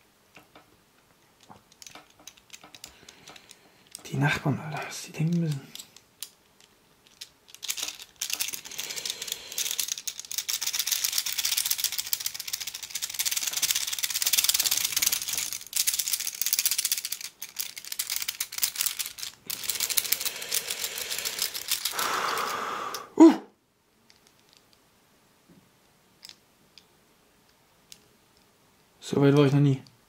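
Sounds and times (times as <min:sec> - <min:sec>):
metal puzzle pieces clicking: 0:01.4 - 0:04.1, 0:05.2 - 0:22.5, 0:26.2 - 0:26.9.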